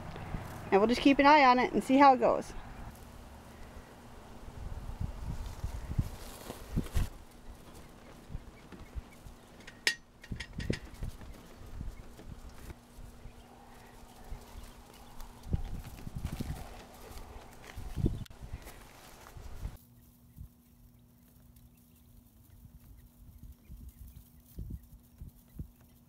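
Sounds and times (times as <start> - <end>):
faint steady hum: 0.0 - 25.7.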